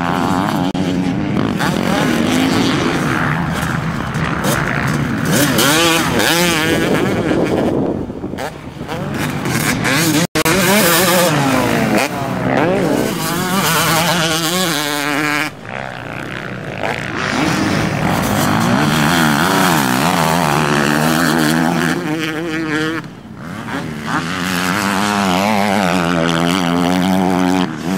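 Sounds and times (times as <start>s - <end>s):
motocross bike engine revving: 0.0s - 27.9s.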